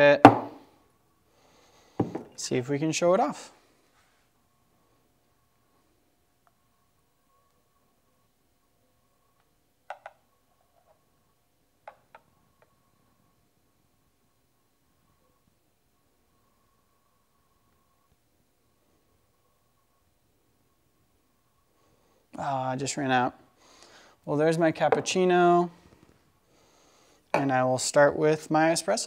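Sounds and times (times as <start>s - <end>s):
faint steady hum: 0.0s - 29.0s.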